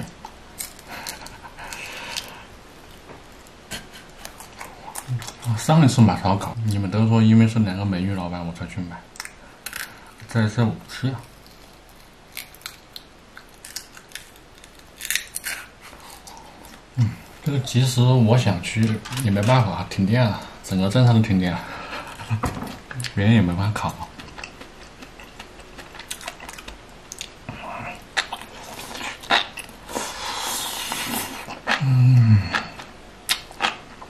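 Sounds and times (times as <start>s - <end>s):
man eating close to microphone: 0.0s - 5.7s, 21.7s - 34.0s
hissing breaths: 0.8s - 2.6s, 29.9s - 31.9s.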